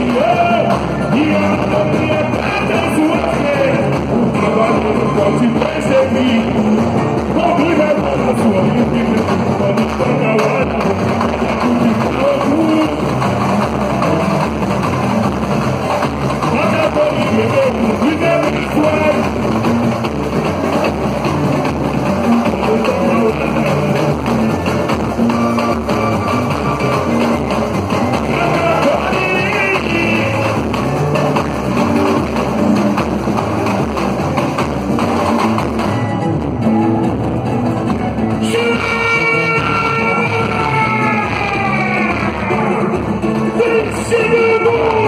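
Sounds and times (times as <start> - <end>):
samba drums and percussion: 0.0 - 45.0.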